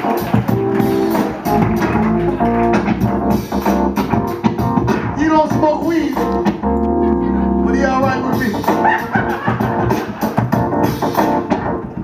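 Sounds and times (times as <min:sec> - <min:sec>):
bass guitar: 0:00.0 - 0:12.0.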